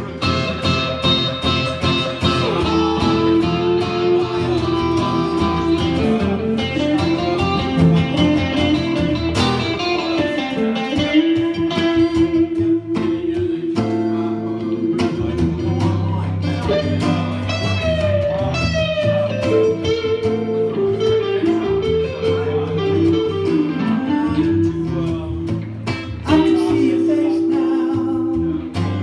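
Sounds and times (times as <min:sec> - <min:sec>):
acoustic guitar chords: 0:00.0 - 0:29.0
electric guitar lead melody: 0:00.0 - 0:29.0.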